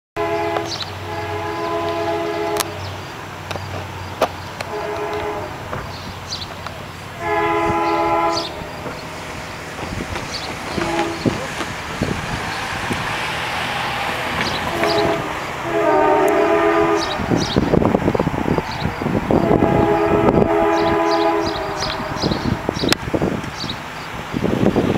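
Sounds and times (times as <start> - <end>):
locomotive air horn blasts: 0.2 - 3.0, 4.6 - 5.7, 7.1 - 8.9, 10.7 - 11.5, 14.5 - 17.6, 19.4 - 22.9
car passing tyre noise: 0.2 - 24.9.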